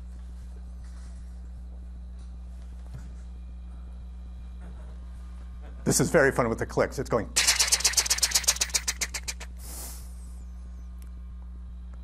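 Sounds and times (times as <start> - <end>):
burst of hiss: 7.4 - 10.2.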